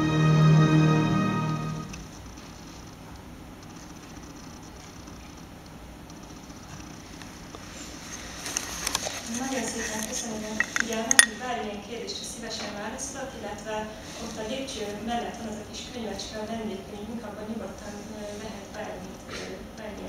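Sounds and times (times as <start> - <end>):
people talking: 9.3 - 20.0
sharp clicks and clinks: 10.6 - 11.4.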